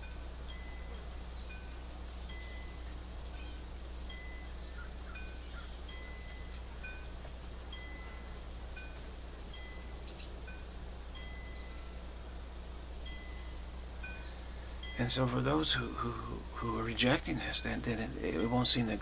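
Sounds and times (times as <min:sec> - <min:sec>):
birds chirping: 0:00.0 - 0:19.0
steady low hum: 0:00.0 - 0:19.0.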